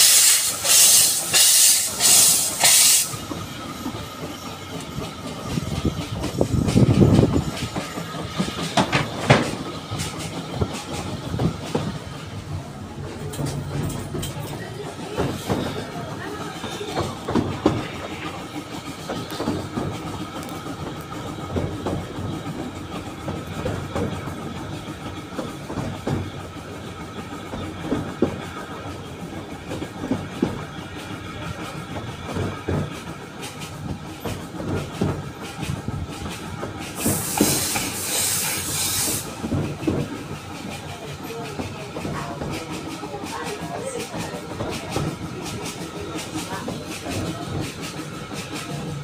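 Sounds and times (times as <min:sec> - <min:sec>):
loud steam hissing: 0:00.0 - 0:13.0, 0:32.8 - 0:49.0
steam train rumbling: 0:00.0 - 0:49.0
wheels clicking over rail joints: 0:00.6 - 0:49.0.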